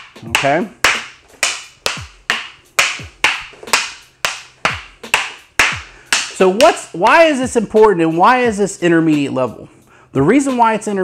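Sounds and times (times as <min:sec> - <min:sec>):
sticks clacking together: 0:00.0 - 0:06.8
background music with a beat: 0:00.0 - 0:11.0.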